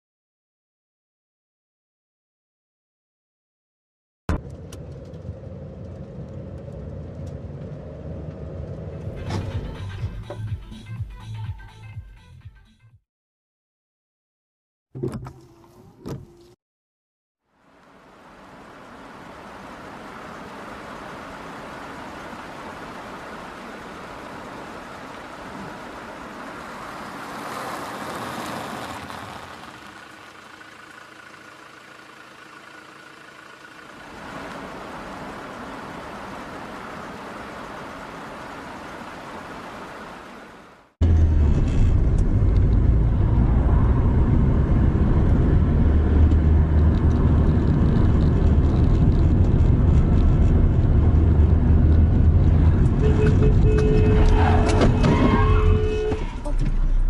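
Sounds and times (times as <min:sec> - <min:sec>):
road and vehicle noise: 0:04.3 - 0:12.4, 0:15.0 - 0:16.6, 0:17.4 - 0:57.0
deep steady car rumble: 0:04.3 - 0:12.5, 0:15.0 - 0:16.6, 0:17.7 - 0:57.0.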